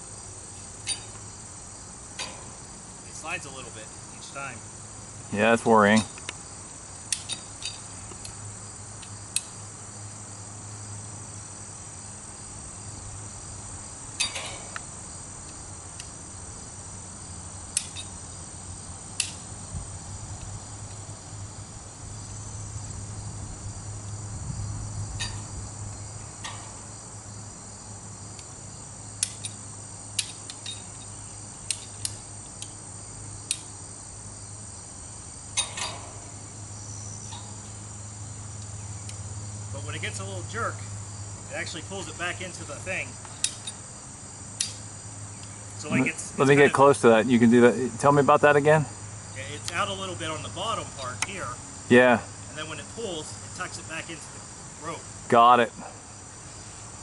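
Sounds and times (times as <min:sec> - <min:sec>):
insect chirring: 0:00.0 - 0:57.0.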